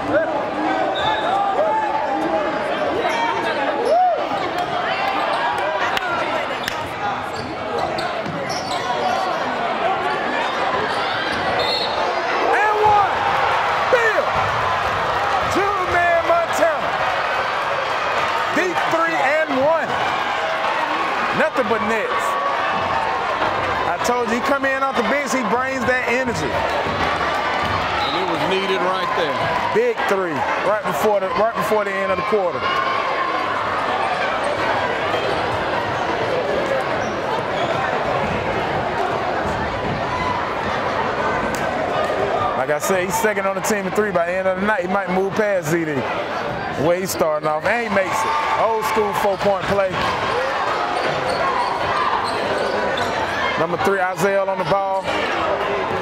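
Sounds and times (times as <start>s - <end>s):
crowd chatter and shouts: 0.0s - 56.0s.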